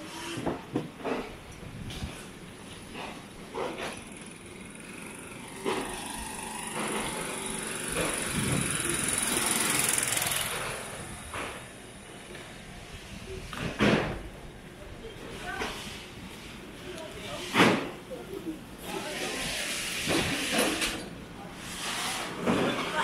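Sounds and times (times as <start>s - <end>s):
vehicle passing rush: 4.3s - 13.1s.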